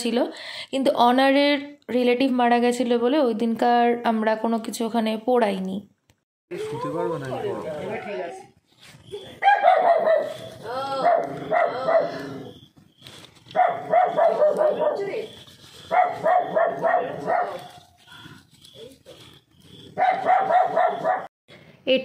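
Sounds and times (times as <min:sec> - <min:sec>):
dog barking rapidly: 0:09.4 - 0:12.2, 0:13.5 - 0:18.0, 0:19.8 - 0:21.3.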